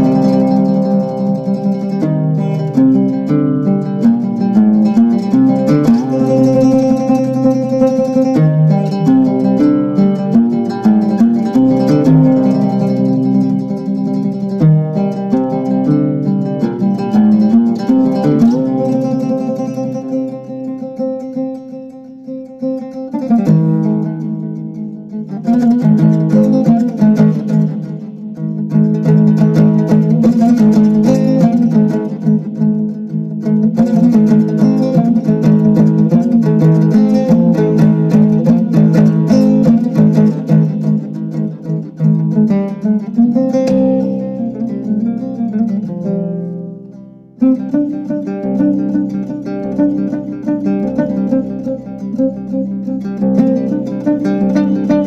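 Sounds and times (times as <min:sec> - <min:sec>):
plucked string music: 0:00.0 - 0:55.0.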